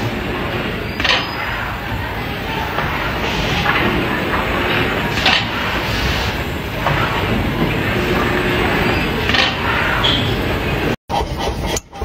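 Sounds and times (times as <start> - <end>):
factory machinery rumbling: 0.0 - 12.0.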